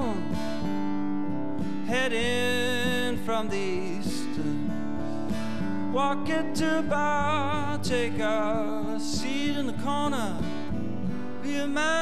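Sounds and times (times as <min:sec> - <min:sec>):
man singing: 0:00.0 - 0:00.6, 0:01.7 - 0:05.0, 0:05.8 - 0:12.0
acoustic guitar strummed: 0:00.0 - 0:12.0.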